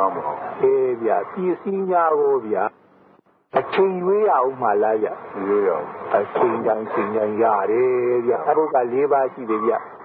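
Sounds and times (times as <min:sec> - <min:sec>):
man speaking: 0:00.0 - 0:02.7, 0:03.5 - 0:09.9.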